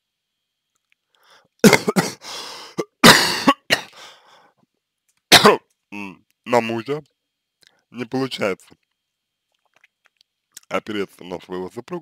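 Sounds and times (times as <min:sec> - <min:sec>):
man coughing: 0:01.6 - 0:04.0, 0:05.3 - 0:05.6.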